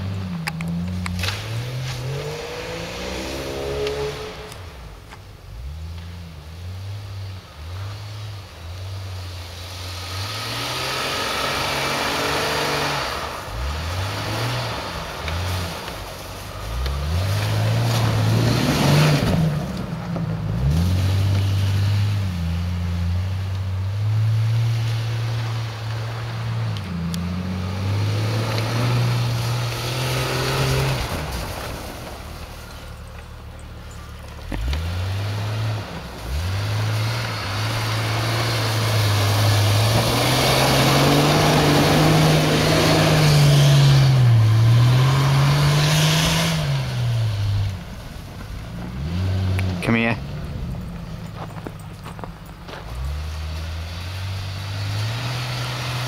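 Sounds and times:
car engine revving: 0.0s - 56.0s
tyres churning snow: 0.0s - 56.0s.

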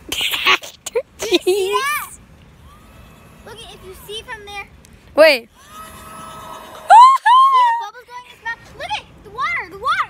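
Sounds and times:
faint steady hum: 0.0s - 9.9s
child's high-pitched squeal: 1.7s - 4.3s, 5.5s - 8.0s.

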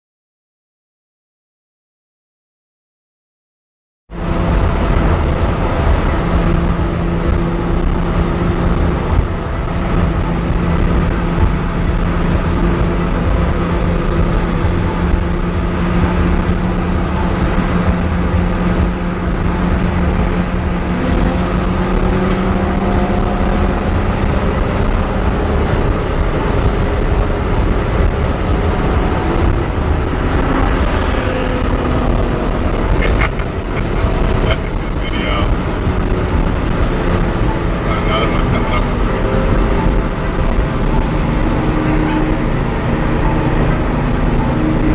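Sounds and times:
engine drone: 4.1s - 44.9s
road and wind rumble: 4.1s - 44.9s.

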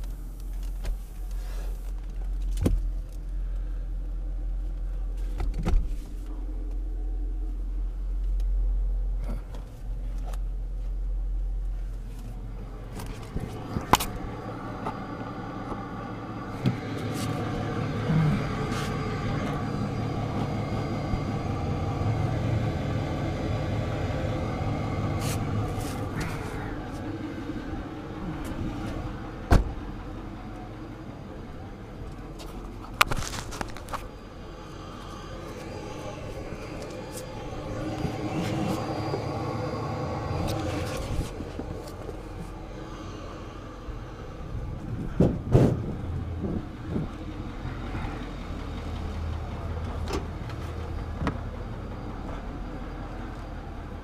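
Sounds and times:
truck engine running: 6.0s - 54.0s.

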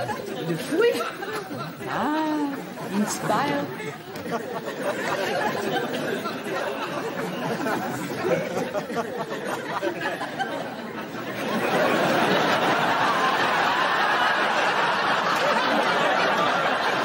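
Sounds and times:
crowd chatter: 0.0s - 17.0s
person speaking: 1.8s - 4.5s.

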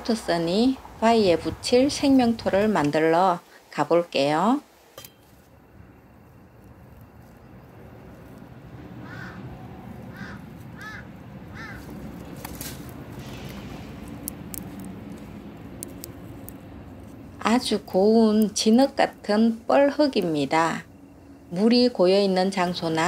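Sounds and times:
low outdoor rumble: 0.0s - 23.0s
crow-like bird calls: 8.9s - 12.0s.

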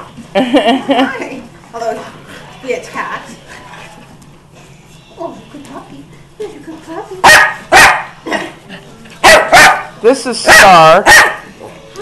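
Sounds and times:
dog barking: 7.2s - 8.2s, 9.2s - 11.5s.

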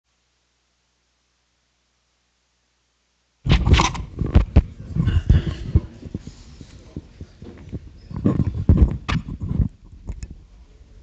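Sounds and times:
low thumps and knocks: 3.5s - 6.2s, 7.0s - 10.3s.

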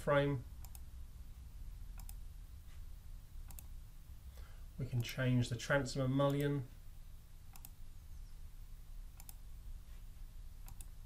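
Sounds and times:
low steady hum: 0.0s - 11.0s
computer mouse clicks: 0.6s - 0.9s, 2.0s - 2.2s, 3.5s - 3.7s, 7.5s - 7.8s, 9.2s - 9.4s, 10.6s - 11.0s.

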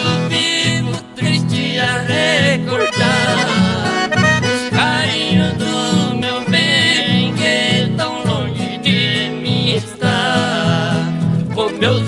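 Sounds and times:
accordion melody: 0.0s - 12.0s
acoustic guitar: 0.0s - 12.0s.

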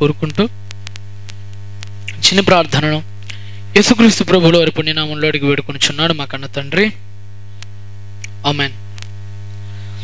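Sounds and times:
man speaking: 0.0s - 0.6s, 2.1s - 3.1s, 3.7s - 7.0s, 8.3s - 8.8s
electrical mains hum: 0.0s - 10.0s.

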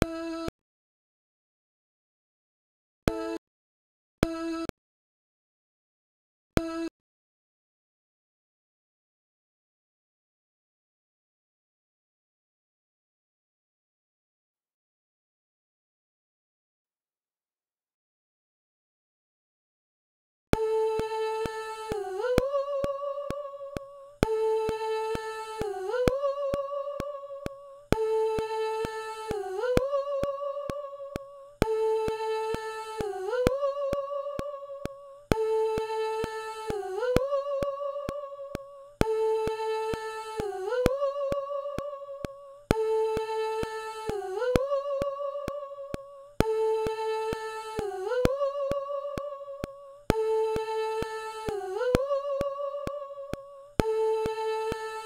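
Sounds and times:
looped sung vocal note: 3.1s - 3.4s, 20.6s - 55.0s
thin ticks: 21.0s - 55.0s.

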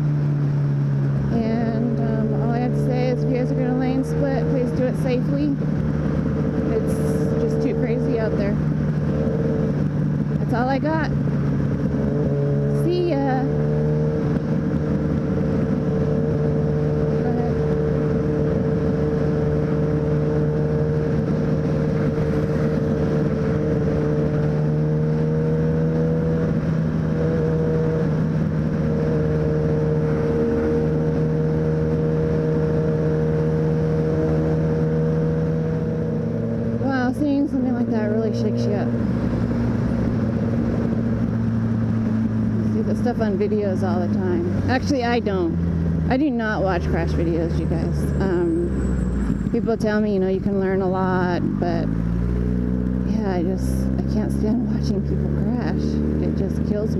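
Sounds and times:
motorcycle engine cruising: 0.0s - 56.9s
road and wind noise: 0.0s - 56.9s.

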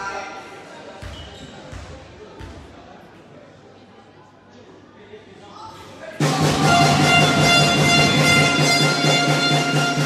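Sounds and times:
arena horn blast: 6.3s - 10.0s.

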